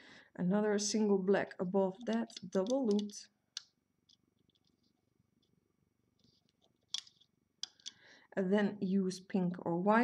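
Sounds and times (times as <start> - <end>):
soft plastic clicks: 2.0 - 5.6, 6.2 - 8.0
rubber bands stretching on pegs: 6.2 - 8.0.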